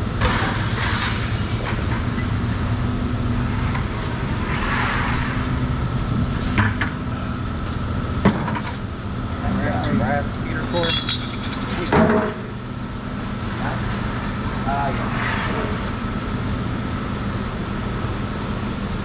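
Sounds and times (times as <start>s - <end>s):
low engine-like hum: 0.0s - 19.0s
metal clanks: 10.7s - 12.4s.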